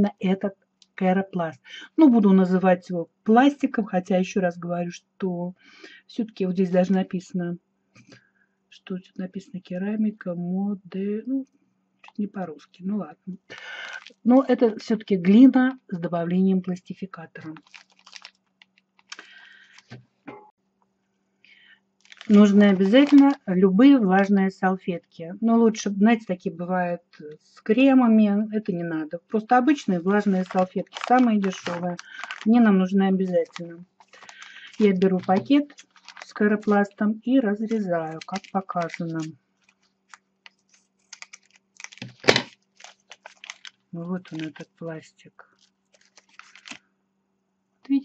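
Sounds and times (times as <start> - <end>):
plastic packaging crinkling: 12.0 - 12.3, 13.4 - 14.3, 17.4 - 20.0, 22.0 - 23.6, 29.7 - 44.8, 45.5 - 46.8
scissors snipping foil: 22.1 - 23.4, 30.2 - 32.5, 33.4 - 36.8, 37.6 - 44.6, 46.0 - 46.8.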